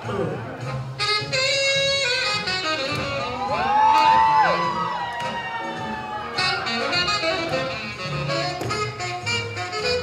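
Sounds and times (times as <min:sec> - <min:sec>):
slow jazz music: 0:00.0 - 0:10.0
audience member whooping: 0:03.0 - 0:07.4.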